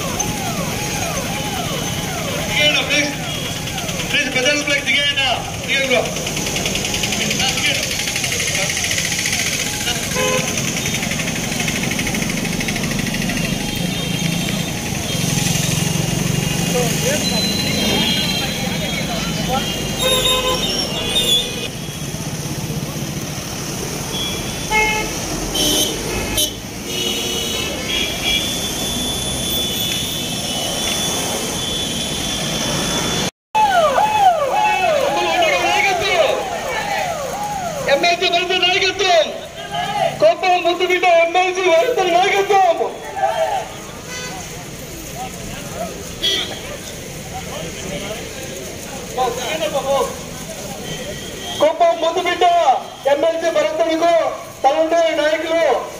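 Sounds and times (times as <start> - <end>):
traffic noise: 0.0 - 55.9
car horns honking: 1.0 - 4.6, 9.9 - 11.0, 13.4 - 22.1, 24.1 - 33.3, 43.8 - 44.5, 46.2 - 46.8, 50.8 - 53.4
crowd voices: 33.6 - 52.4.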